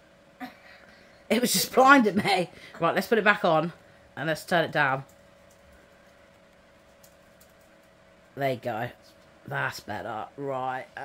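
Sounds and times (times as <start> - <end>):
faint fan hum: 0.0 - 11.0.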